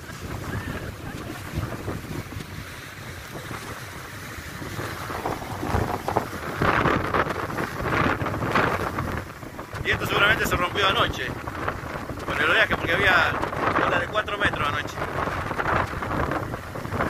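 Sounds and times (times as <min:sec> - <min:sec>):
heavy storm surf: 0:00.0 - 0:17.0
wind buffeting microphone: 0:00.0 - 0:17.0.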